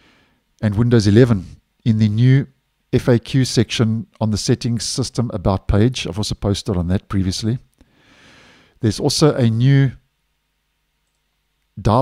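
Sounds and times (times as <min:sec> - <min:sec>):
man speaking: 0:00.6 - 0:07.7, 0:08.8 - 0:10.0, 0:11.8 - 0:12.0.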